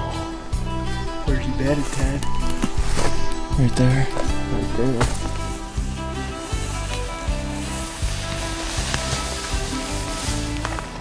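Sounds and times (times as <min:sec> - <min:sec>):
faint hiss: 0:00.0 - 0:10.8
music with pulsing low beat: 0:00.0 - 0:11.0.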